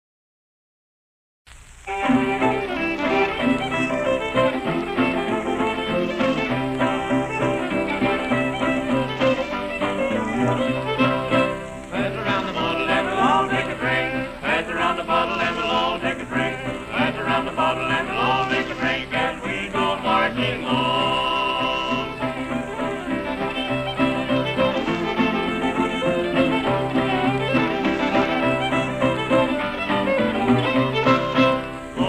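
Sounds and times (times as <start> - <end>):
old-time string band record: 1.5 - 32.0
fiddle: 1.6 - 32.0.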